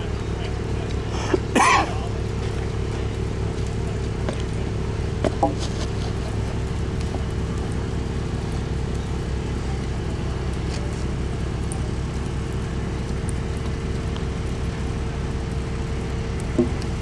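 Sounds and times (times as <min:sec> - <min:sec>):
low mechanical hum: 0:00.0 - 0:17.0.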